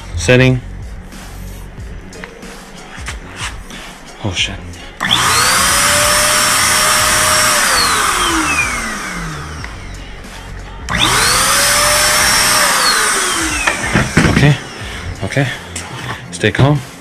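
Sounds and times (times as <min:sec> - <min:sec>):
electric paint sprayer whining: 0:05.0 - 0:10.0, 0:10.9 - 0:15.2.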